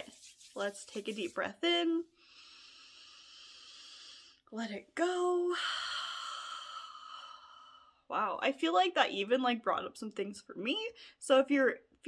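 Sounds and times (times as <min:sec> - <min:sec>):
woman breathing in deeply: 0:02.2 - 0:04.4.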